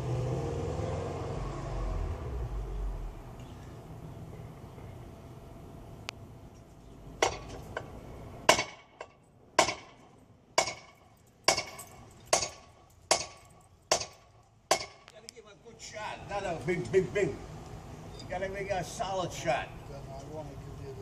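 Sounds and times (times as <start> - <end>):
steel bar striking metal: 10.6 - 15.0.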